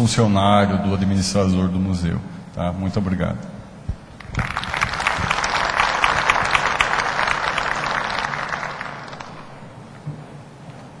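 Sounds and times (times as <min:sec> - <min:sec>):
audience applauding: 0:04.2 - 0:09.7.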